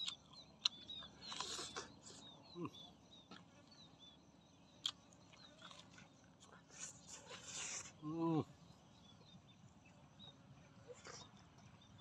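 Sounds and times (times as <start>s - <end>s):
soft chewing and tearing: 0.0s - 2.2s, 4.8s - 8.0s.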